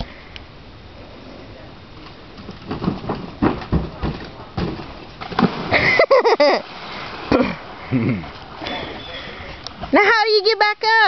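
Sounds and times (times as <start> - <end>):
people laughing: 5.7 - 6.6.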